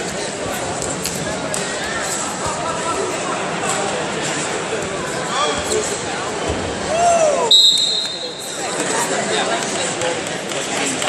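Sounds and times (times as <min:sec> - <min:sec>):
referee's whistle blast: 0:07.5 - 0:08.5.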